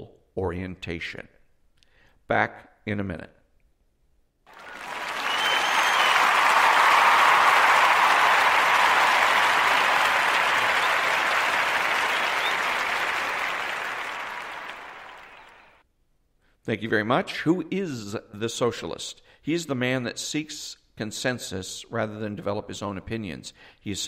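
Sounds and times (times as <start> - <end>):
crowd applause: 4.5 - 15.8.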